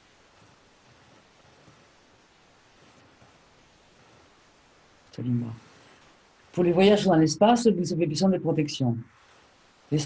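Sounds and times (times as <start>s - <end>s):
faint hiss: 0.0s - 10.0s.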